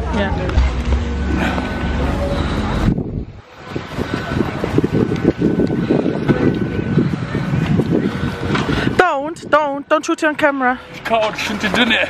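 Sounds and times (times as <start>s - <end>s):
wind buffeting microphone: 0.3s - 10.5s.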